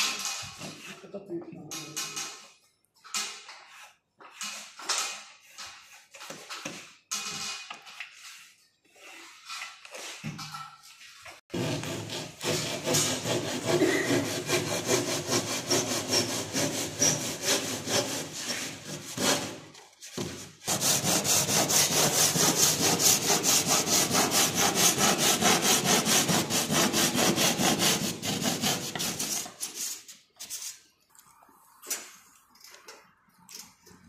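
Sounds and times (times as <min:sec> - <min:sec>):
hand saw cutting gypsum board: 0:11.5 - 0:29.8.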